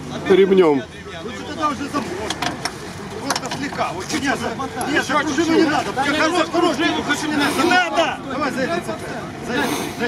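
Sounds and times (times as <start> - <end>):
onlookers chattering: 0.0 - 10.0.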